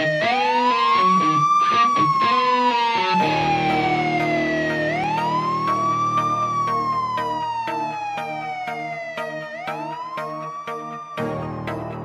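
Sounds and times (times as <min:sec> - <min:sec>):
guitar: 0:00.0 - 0:12.0
siren wailing: 0:00.0 - 0:12.0
music beat: 0:03.1 - 0:12.0
held low chord: 0:03.2 - 0:12.0.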